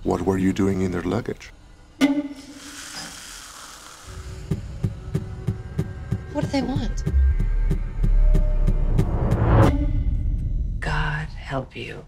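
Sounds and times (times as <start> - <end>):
pulsing heartbeat-like thumps: 4.3 - 11.4.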